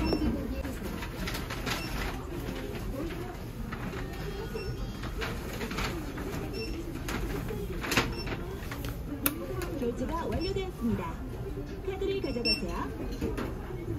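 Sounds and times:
wavering shop background: 0.0 - 13.9.

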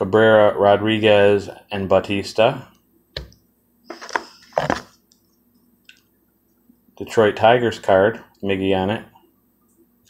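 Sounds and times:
plastic card holders shuffling: 3.9 - 5.0.

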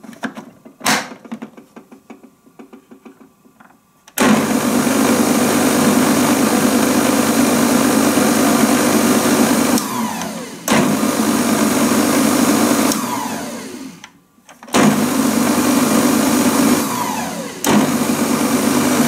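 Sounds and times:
food processor motor running: 4.2 - 19.0.

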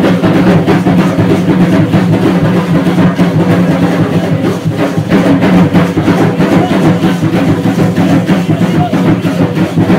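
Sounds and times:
drum-led percussion music: 0.0 - 9.9.

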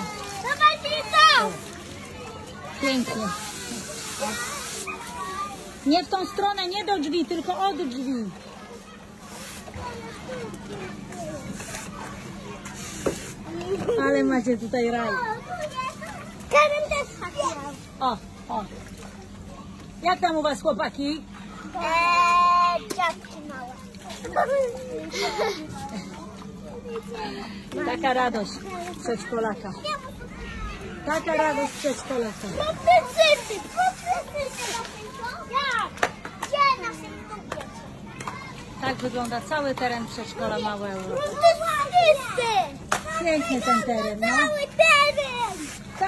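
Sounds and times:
children calling out: 0.0 - 6.0, 21.4 - 27.6, 40.4 - 46.0
young children playing: 0.0 - 46.0.

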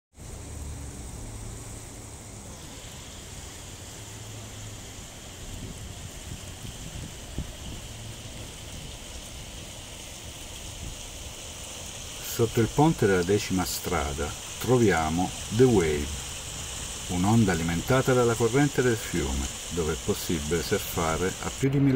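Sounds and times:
low water rumble: 0.2 - 21.9
river water rushing: 0.2 - 21.9.

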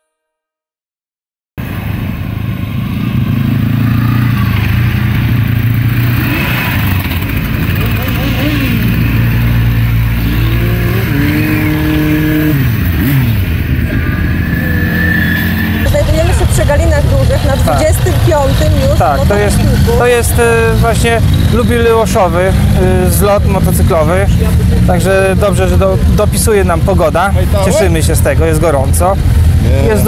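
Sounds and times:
motorcycles riding past: 1.6 - 30.0.

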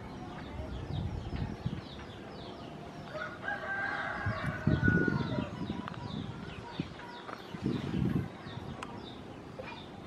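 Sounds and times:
small birds chirping: 0.0 - 10.0
rooster crowing: 3.1 - 5.4.

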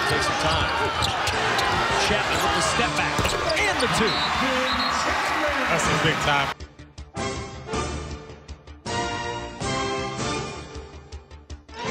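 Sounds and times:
arena crowd noise: 0.0 - 6.6.

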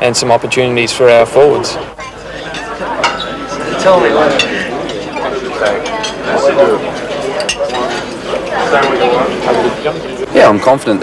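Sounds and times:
people talking indistinctly: 0.0 - 11.0.

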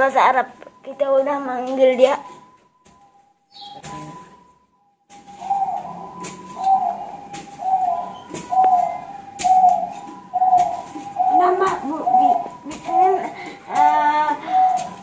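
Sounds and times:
bird calling: 3.4 - 4.4, 5.1 - 15.0.

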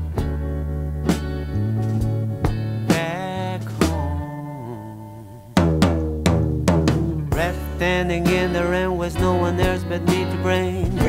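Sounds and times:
drum hits and struck chords: 0.0 - 4.2, 5.6 - 11.0
band music: 0.0 - 11.0.

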